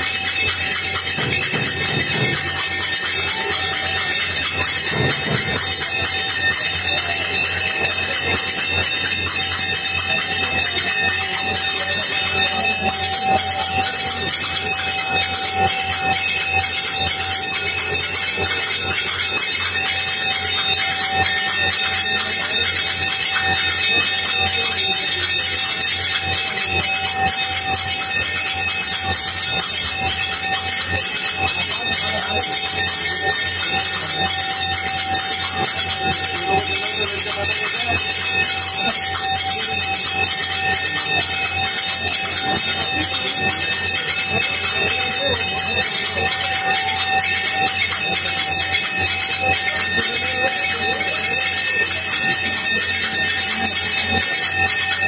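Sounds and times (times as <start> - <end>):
hand cymbals clanging: 0.0 - 55.0
temple bells clanging: 0.0 - 55.0.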